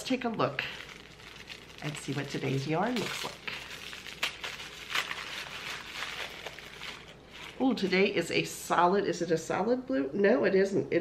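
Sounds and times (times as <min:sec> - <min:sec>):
fabric bag rustling: 0:00.6 - 0:08.2.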